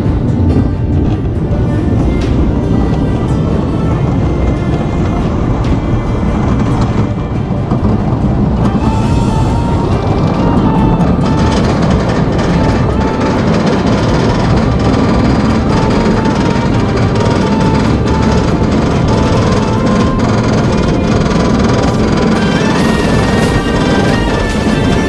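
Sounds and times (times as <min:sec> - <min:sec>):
background music with held notes: 0:00.0 - 0:25.0.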